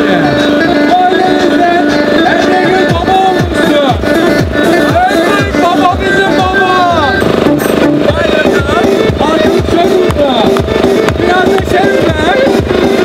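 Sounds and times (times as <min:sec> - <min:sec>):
electronic keyboard dance tune: 0:00.0 - 0:13.0
programmed drum beat: 0:00.0 - 0:13.0.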